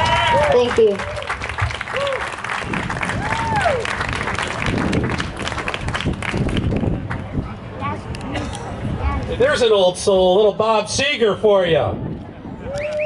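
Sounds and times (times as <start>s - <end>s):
crowd whooping: 0.0s - 4.6s, 12.5s - 13.0s
audience applauding: 0.0s - 7.2s.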